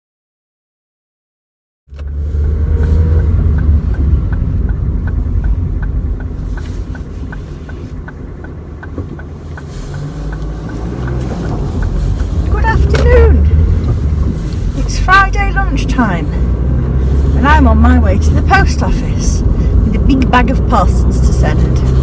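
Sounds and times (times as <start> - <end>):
car engine and road noise: 1.9 - 22.0
light ticking: 3.1 - 17.1.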